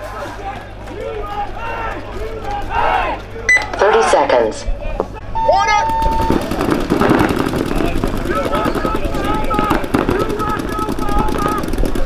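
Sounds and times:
players shouting: 0:00.0 - 0:12.0
paintball markers firing rapidly: 0:06.0 - 0:12.0.

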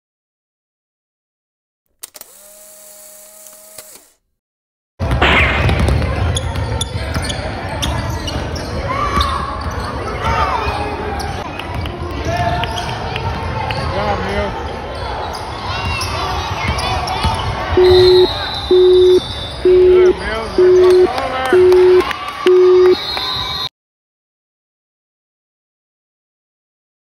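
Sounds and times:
low electronic beep: 0:17.8 - 0:23.0.

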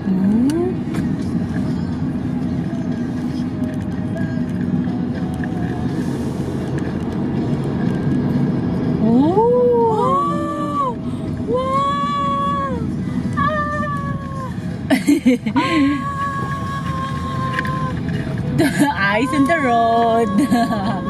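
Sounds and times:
car engine and road noise: 0:00.0 - 0:21.0.

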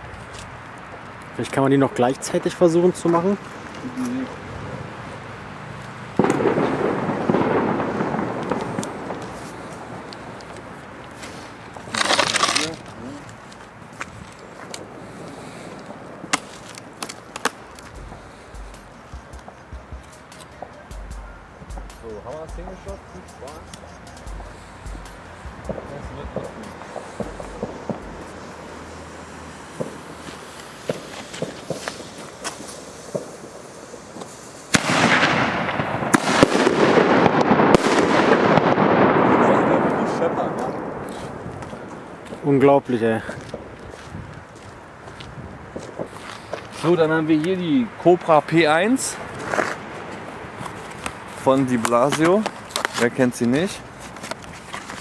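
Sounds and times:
firecrackers crackling: 0:00.0 - 0:55.0
fireworks bangs and pops: 0:06.0 - 0:42.5, 0:45.6 - 0:47.6.

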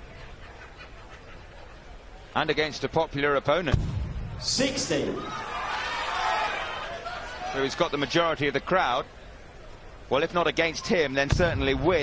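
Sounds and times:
murmur of indoor crowd: 0:00.0 - 0:12.0.

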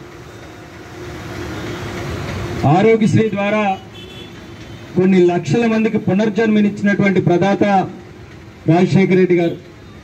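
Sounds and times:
road traffic: 0:00.0 - 0:10.0.

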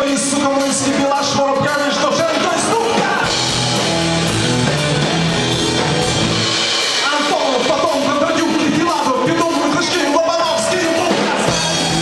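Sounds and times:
lead singer's voice: 0:00.0 - 0:03.4
live rock band playing: 0:00.0 - 0:12.0.

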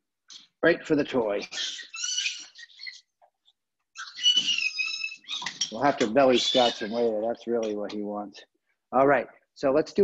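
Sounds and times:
small animal squealing: 0:01.3 - 0:03.2, 0:03.9 - 0:07.2.

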